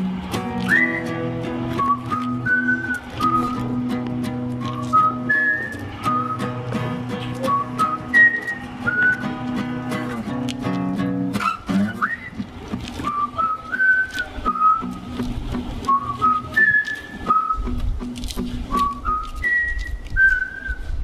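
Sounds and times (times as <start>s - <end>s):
strummed acoustic guitar: 0.0s - 19.6s
people whistling a melody: 0.6s - 4.0s, 4.6s - 6.7s, 7.4s - 9.4s, 11.4s - 15.0s, 15.8s - 17.9s, 18.7s - 21.0s.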